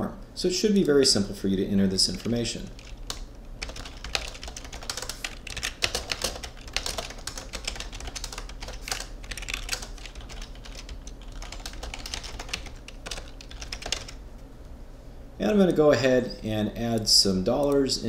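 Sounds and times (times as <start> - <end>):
steady low hum: 0.0 - 18.0
typing on computer keyboard: 2.2 - 14.2.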